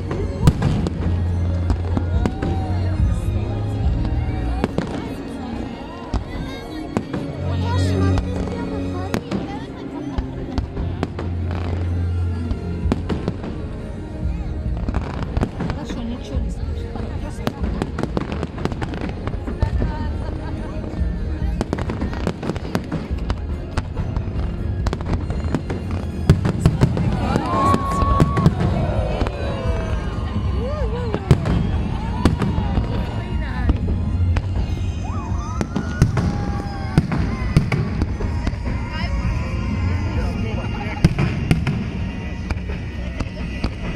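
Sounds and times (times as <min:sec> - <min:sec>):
fireworks bangs and crackling: 0:00.0 - 0:43.9.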